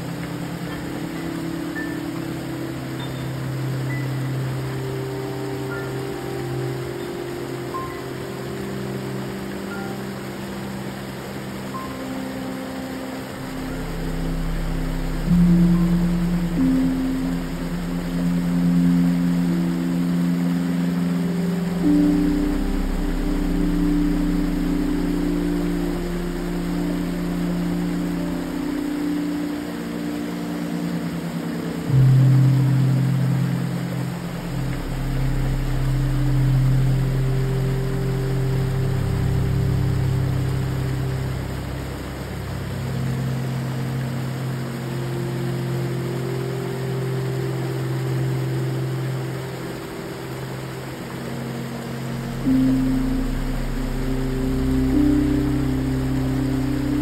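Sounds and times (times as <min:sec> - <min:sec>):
ambient synthesizer music: 0:00.0 - 0:57.0
small waterfall rushing: 0:00.0 - 0:57.0.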